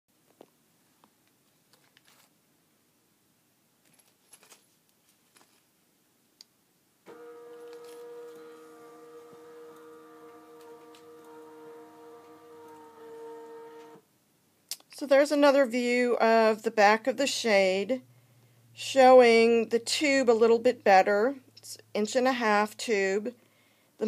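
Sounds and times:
shade motor humming: 7.1 - 14.0.

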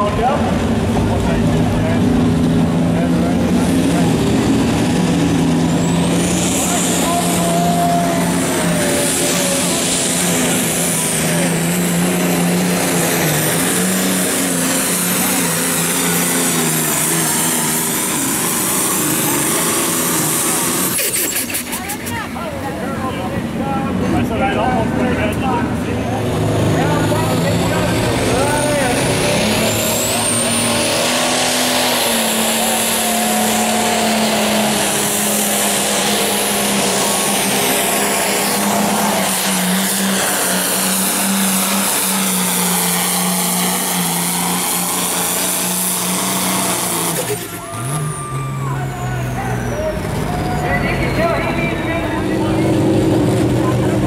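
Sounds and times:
tractor diesel engines under load: 0.0 - 54.0.

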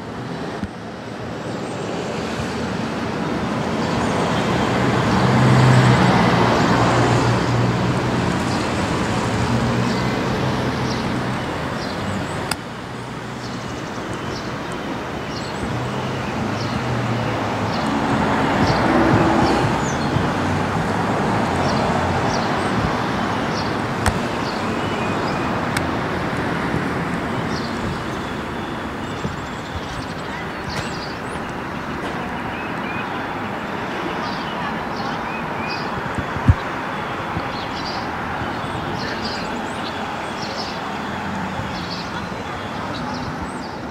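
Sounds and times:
road traffic hum: 0.0 - 43.9.

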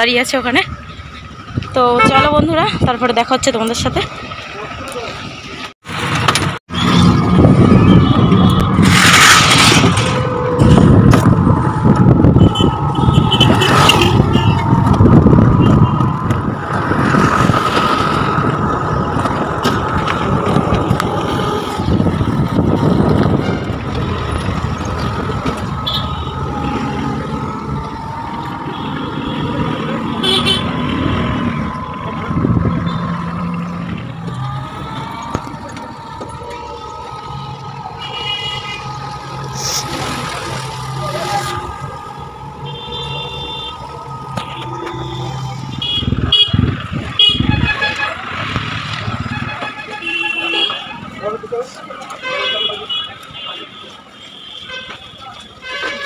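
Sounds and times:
motor and road noise: 0.0 - 56.0
vehicle horn toots: 2.0 - 2.4, 28.7 - 31.4, 38.0 - 39.0, 42.6 - 43.8, 44.4 - 48.2, 49.2 - 51.1, 52.2 - 56.0.

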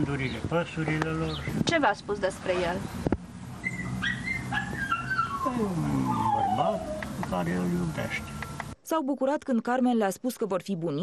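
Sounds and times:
dog whining: 3.6 - 7.2.

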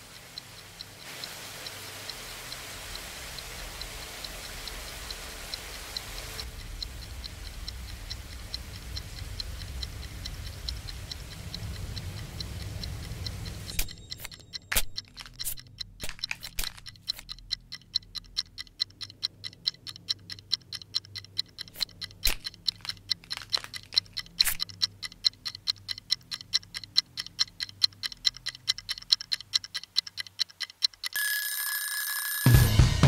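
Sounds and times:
mechanical ticking: 0.0 - 32.8
steady alarm ringing tone: 13.7 - 14.8, 31.2 - 33.0.

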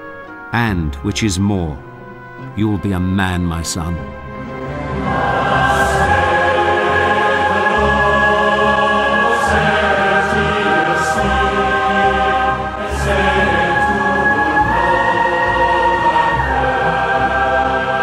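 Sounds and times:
choir singing held chords: 3.9 - 18.0.

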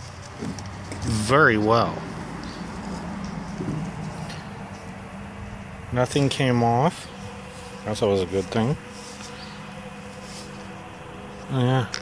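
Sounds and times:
low even hum: 0.0 - 12.0.

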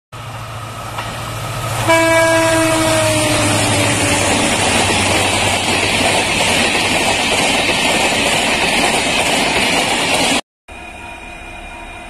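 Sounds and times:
diesel locomotive engine rumble: 0.2 - 12.0
train horn blast: 1.8 - 4.7.

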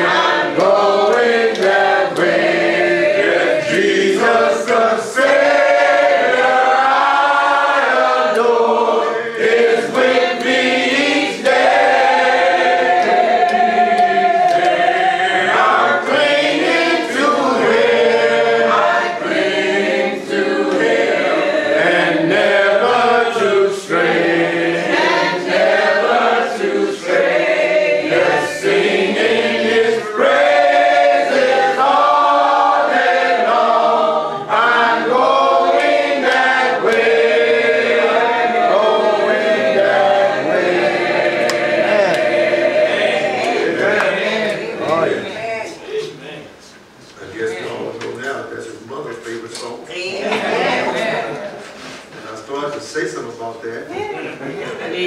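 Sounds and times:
congregation singing a hymn: 0.0 - 45.9, 49.0 - 53.5.

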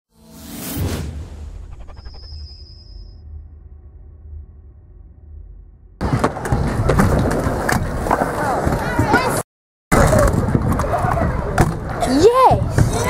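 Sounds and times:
skateboard wheels rolling: 6.0 - 9.4.

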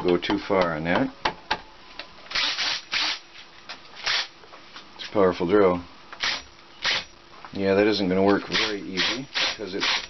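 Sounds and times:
cordless drill bursts: 2.3 - 3.2, 4.0 - 4.3, 8.5 - 10.0.

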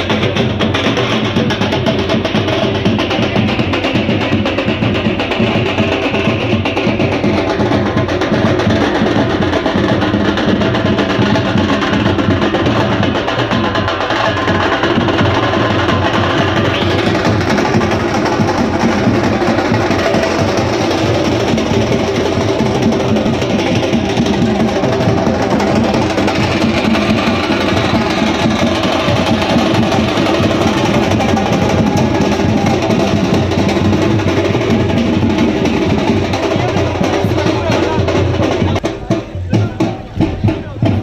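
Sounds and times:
continuous drumming: 0.0 - 41.0
loud music: 12.0 - 40.6.

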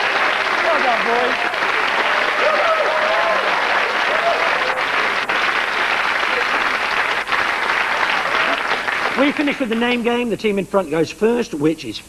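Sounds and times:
audience applauding: 0.0 - 10.2.

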